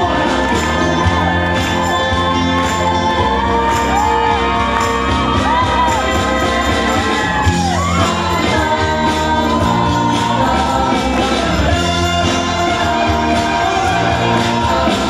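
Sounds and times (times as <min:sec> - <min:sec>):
crowd noise: 0:00.0 - 0:15.0
live band playing gospel-rock: 0:00.0 - 0:15.0
man singing long notes: 0:00.0 - 0:15.0.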